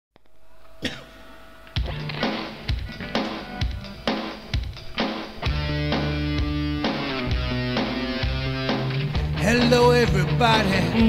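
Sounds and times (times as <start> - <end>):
person coughing: 0.8 - 1.2
music with drum kit: 0.8 - 11.0.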